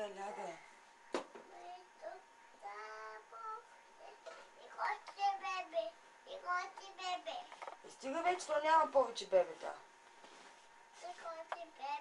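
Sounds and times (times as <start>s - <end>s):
child singing softly: 1.5s - 7.5s, 11.0s - 12.0s.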